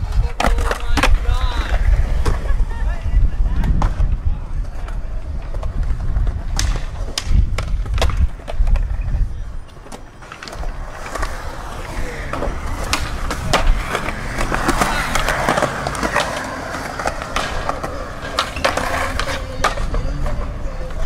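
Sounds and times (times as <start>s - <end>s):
skateboard clacks: 0.0s - 2.7s, 3.4s - 21.0s
skateboard wheels rolling on concrete: 0.0s - 21.0s.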